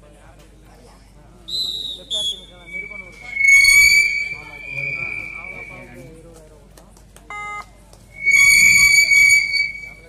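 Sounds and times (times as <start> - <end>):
loud whistle blast: 1.5 - 6.0, 8.1 - 10.0
short whistle beep: 1.6 - 6.0, 8.2 - 10.0.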